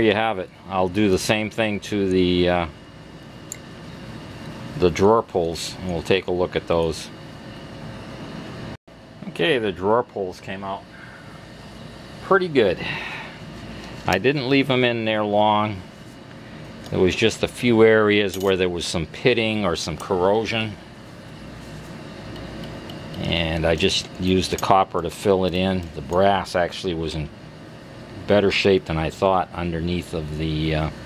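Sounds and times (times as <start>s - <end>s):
fan hiss and low hum: 0.0s - 31.0s
cloth rubbing on metal: 21.0s - 22.1s.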